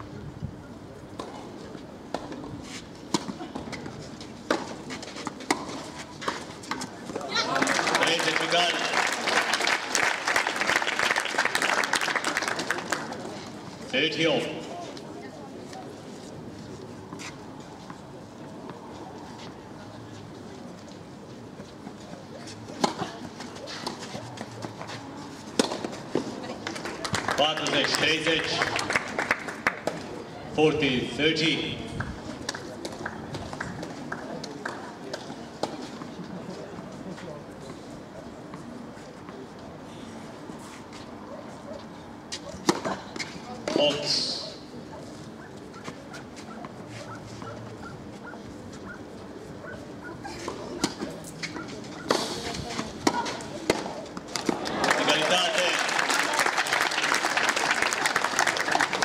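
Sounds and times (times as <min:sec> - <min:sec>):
steady background noise: 0:00.0 - 0:59.0
tennis balls bounced and struck: 0:01.1 - 0:08.9, 0:22.5 - 0:30.2, 0:41.8 - 0:44.2, 0:49.8 - 0:55.7
people talking: 0:27.3 - 0:28.9, 0:43.4 - 0:44.5, 0:51.8 - 0:56.4.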